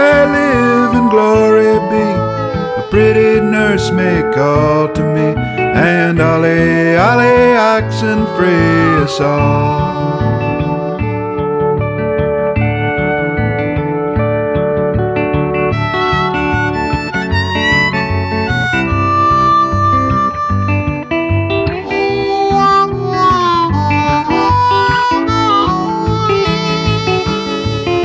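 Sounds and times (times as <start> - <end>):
acoustic guitar: 0.0 - 28.0
bass: 0.0 - 28.0
harmonica bending notes: 0.0 - 28.0.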